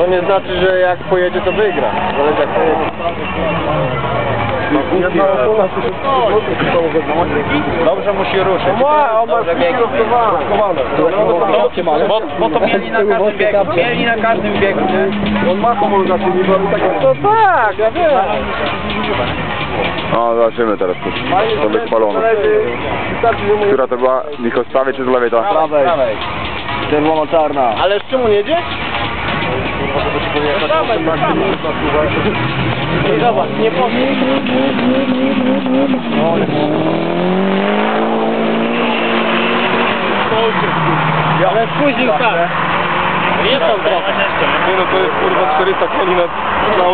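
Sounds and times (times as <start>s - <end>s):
car engine idling: 0.0s - 46.9s
voices talking: 0.0s - 46.9s.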